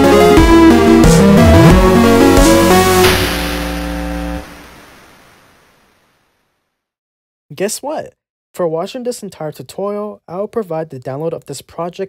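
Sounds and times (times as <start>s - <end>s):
held synth chord and bass: 0.0s - 5.2s
cymbal crash: 0.6s - 5.8s.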